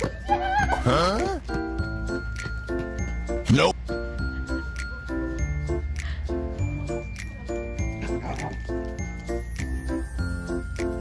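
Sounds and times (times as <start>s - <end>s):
light bouncy background music: 0.0s - 11.0s.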